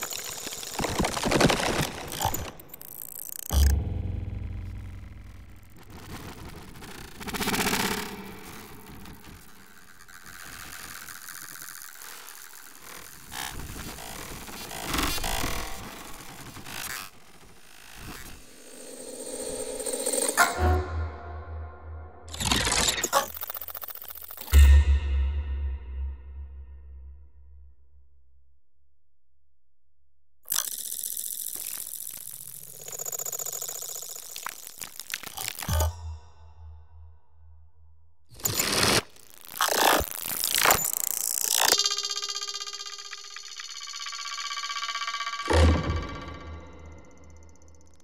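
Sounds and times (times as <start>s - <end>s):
fluttering electronic texture: 0.0s - 24.8s, 30.5s - 35.9s, 38.4s - 48.0s.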